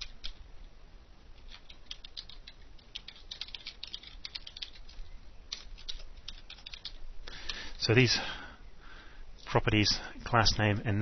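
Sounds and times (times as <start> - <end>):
faint low hum: 0.0 - 11.0
keyboard keystroke clicks: 1.5 - 4.9.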